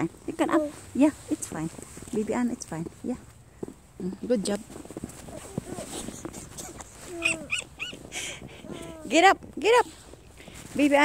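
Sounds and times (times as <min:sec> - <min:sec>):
toddler vocal calls: 0:05.3 - 0:09.2.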